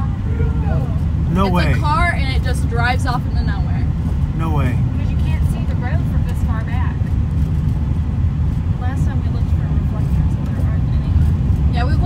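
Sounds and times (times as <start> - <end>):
car engine rumbling inside cabin: 0.0 - 12.0.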